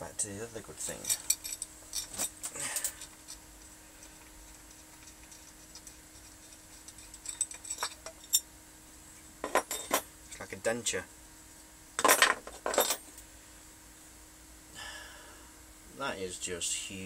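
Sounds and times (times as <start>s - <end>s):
faint steady hum: 0.0s - 17.0s
small metal parts clinking: 0.9s - 3.4s, 4.0s - 8.4s, 9.4s - 10.0s, 12.0s - 13.2s.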